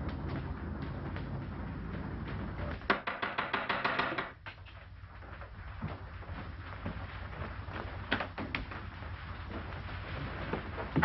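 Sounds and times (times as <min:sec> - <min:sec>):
low steady rumble: 0:00.0 - 0:02.9
fast sharp hard taps: 0:02.8 - 0:04.6.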